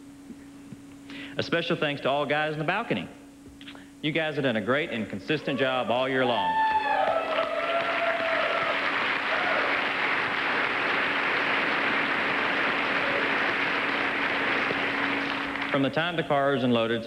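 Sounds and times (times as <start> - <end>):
voices cheering: 5.4 - 15.3
audience applauding: 6.7 - 15.9.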